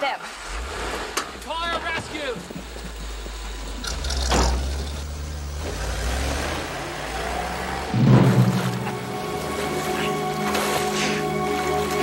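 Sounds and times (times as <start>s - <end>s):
music: 7.9s - 12.0s
sharp knock: 8.0s - 9.6s.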